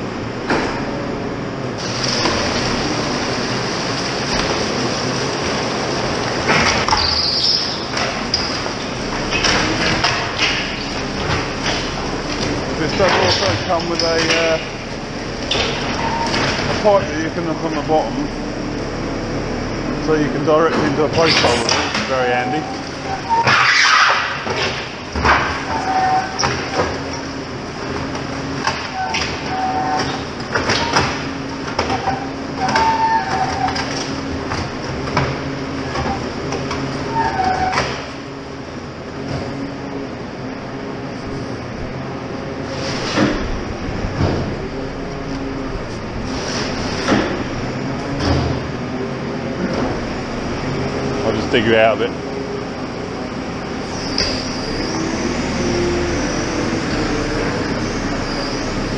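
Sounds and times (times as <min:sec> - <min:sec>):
diesel engine running: 0:00.0 - 0:23.6, 0:24.2 - 0:58.9
concrete mixer bucket turning: 0:00.0 - 0:58.9.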